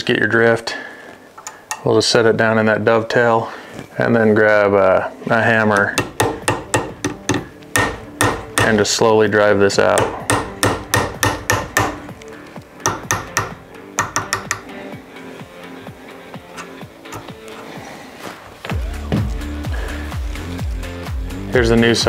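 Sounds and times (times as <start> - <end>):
background music: 0.0 - 22.0
steady music beat: 6.0 - 8.7, 10.0 - 17.8, 18.6 - 22.0
hammer tapping metal punch: 6.0 - 8.8, 9.9 - 12.1, 12.8 - 14.8, 16.6 - 17.4.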